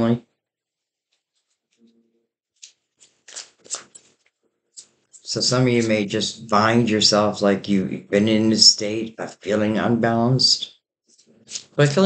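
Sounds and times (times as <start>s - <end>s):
cards being shuffled: 2.6s - 5.3s, 11.2s - 11.8s.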